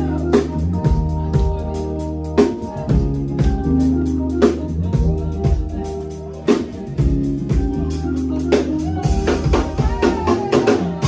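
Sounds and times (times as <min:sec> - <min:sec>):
bass guitar: 0:00.0 - 0:11.0
drum kit: 0:00.0 - 0:11.0
keyboard: 0:00.0 - 0:11.0.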